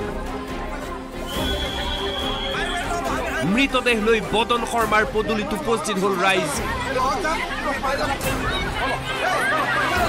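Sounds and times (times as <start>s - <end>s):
background music: 0.0s - 10.0s
crowd noise: 0.0s - 10.0s.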